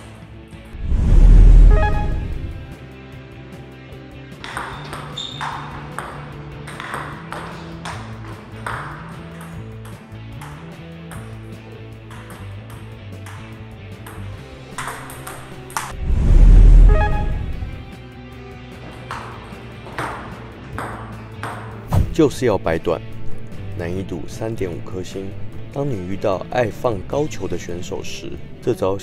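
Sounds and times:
background music with bass line: 0.6 - 4.4, 15.6 - 18.7
loud low boom: 0.8 - 2.7, 15.9 - 17.9.

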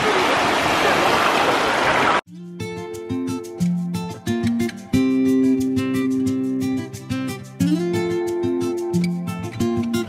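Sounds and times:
small waves splashing: 0.0 - 2.2.

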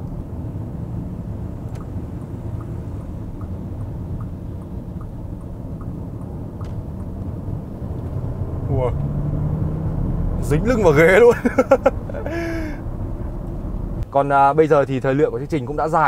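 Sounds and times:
car cabin road rumble: 0.0 - 16.0
engine accelerating hard: 1.2 - 14.0
faint ticking: 1.6 - 7.7.

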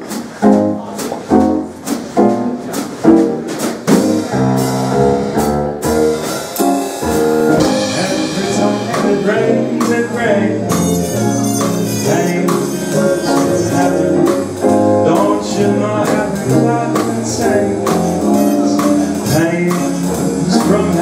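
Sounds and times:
big band swing music: 0.0 - 21.0.

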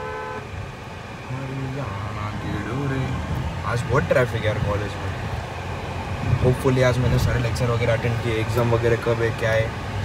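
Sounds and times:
car horn: 0.0 - 0.5
car engine hum: 0.0 - 10.0.

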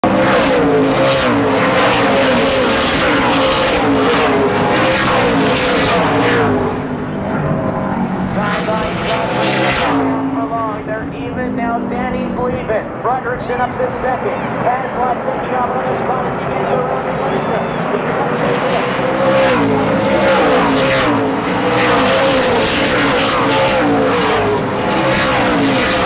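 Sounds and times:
race cars passing at speed: 0.0 - 26.0.

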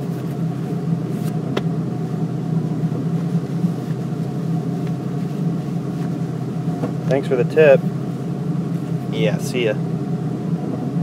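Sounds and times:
car engine idling: 0.0 - 11.0.

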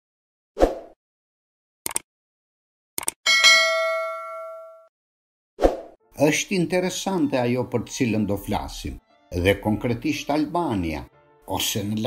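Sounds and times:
bell ding: 3.3 - 4.9.

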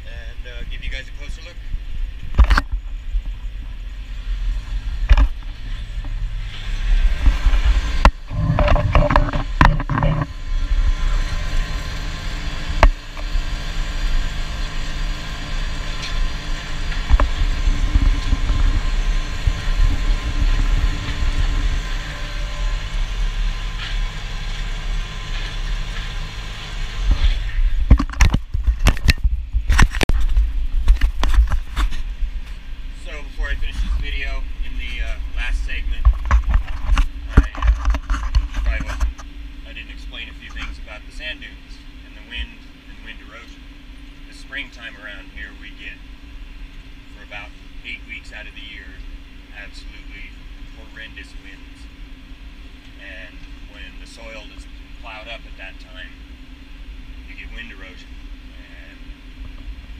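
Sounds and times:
camera knocking and clattering: 2.3 - 2.8, 8.0 - 10.3, 27.8 - 31.9, 36.0 - 39.3
tractor engine under load: 2.4 - 41.0.

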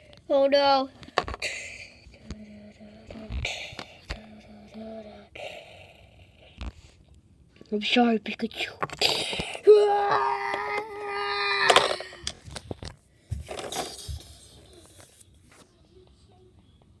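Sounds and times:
person wailing aaah: 9.7 - 12.2.

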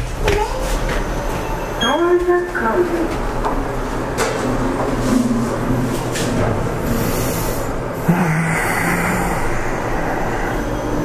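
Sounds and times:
elevator rumble and hum: 0.0 - 11.0.

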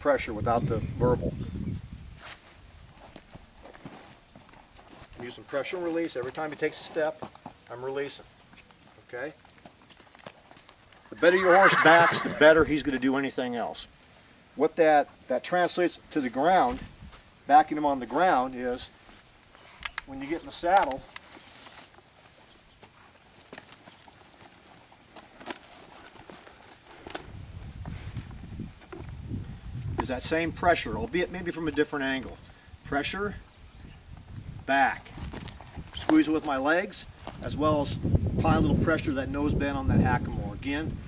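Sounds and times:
horse hooves on dirt: 2.2 - 13.6, 16.2 - 32.4, 34.0 - 39.1
saddle tack clicking: 19.7 - 22.0, 22.8 - 27.3.

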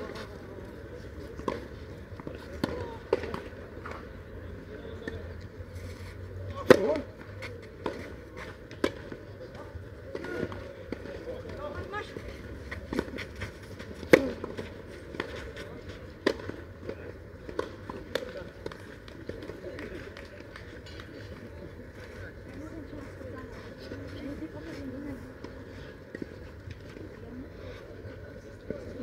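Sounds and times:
tennis balls struck by rackets: 1.3 - 4.2, 6.5 - 21.6.

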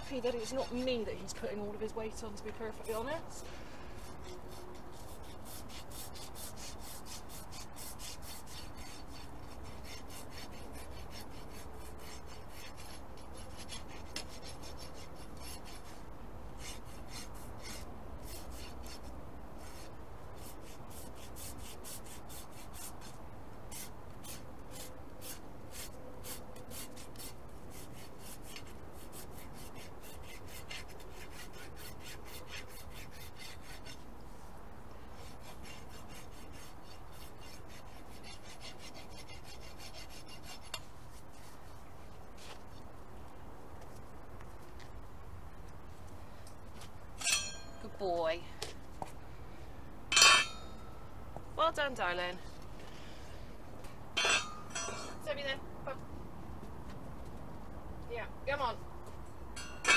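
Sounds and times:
rasp filing horse hoof: 0.0 - 1.4, 3.9 - 34.2, 35.1 - 41.7, 47.2 - 47.9, 50.1 - 50.7, 54.2 - 55.2, 59.6 - 59.9.

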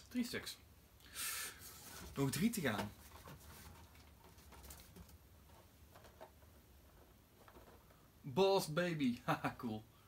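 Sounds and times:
cardboard packaging rustling: 1.6 - 8.0.

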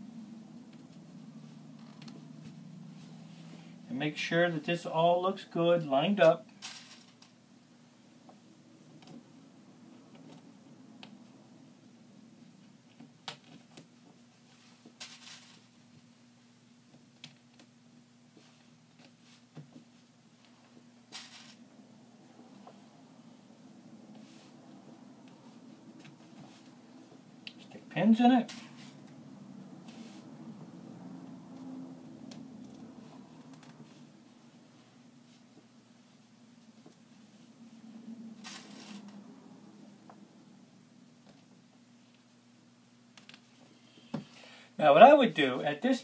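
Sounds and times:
low room hum: 0.0 - 46.0
fabric rustle: 18.3 - 27.4, 28.0 - 31.8, 32.5 - 40.3.

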